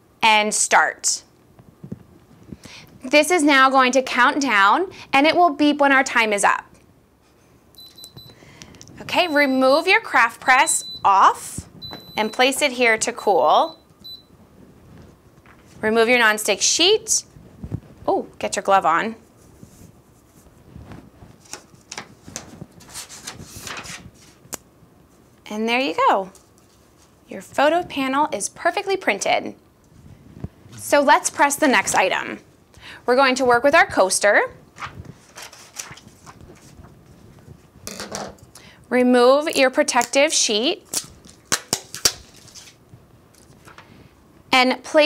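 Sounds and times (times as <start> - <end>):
paper rustling: 19.4 - 24.5, 26.3 - 27.2, 34.8 - 37.7, 41.0 - 43.9
plastic film snapping: 40.8 - 43.6
plastic film crinkling: 40.9 - 43.8.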